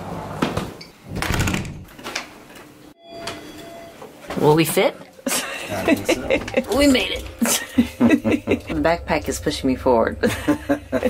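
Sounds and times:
short beeps: 3.0s - 4.1s.

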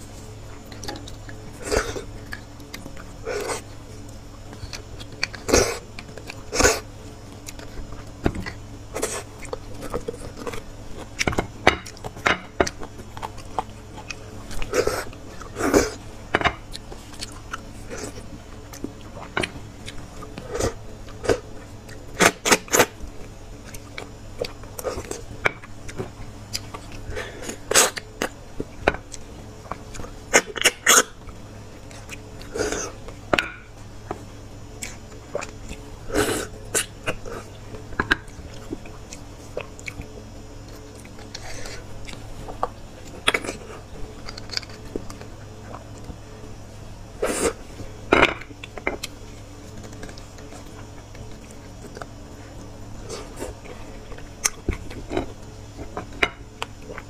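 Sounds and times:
chewing and lip smacks: 38.2s - 40.1s.

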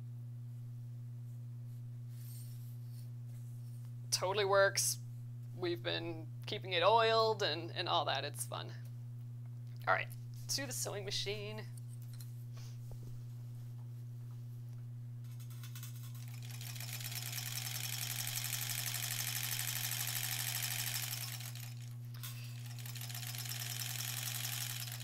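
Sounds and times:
sewing machine chattering: 15.5s - 25.0s.

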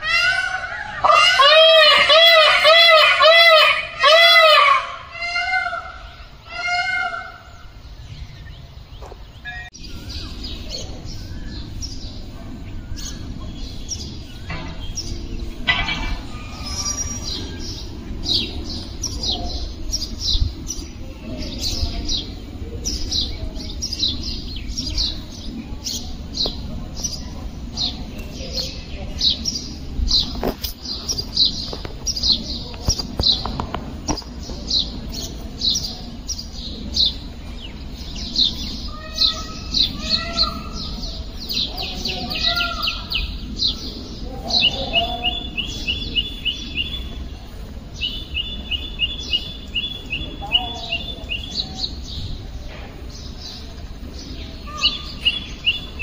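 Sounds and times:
small birds chirping: 0.0s - 56.0s
steady low rumble: 4.8s - 56.0s.

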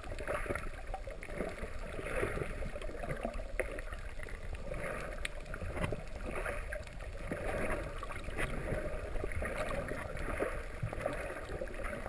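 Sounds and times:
water rushing and sloshing: 0.0s - 12.0s.

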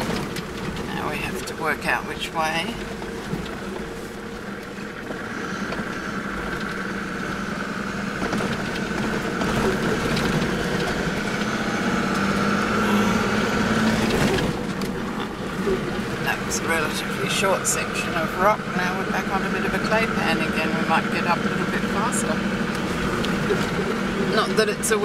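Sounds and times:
engine drone: 0.0s - 25.0s
tyre and road rumble: 0.0s - 25.0s.

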